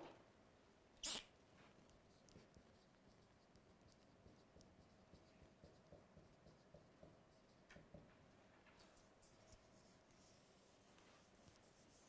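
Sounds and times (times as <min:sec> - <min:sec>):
marker squeaking on whiteboard: 0:01.0 - 0:01.3.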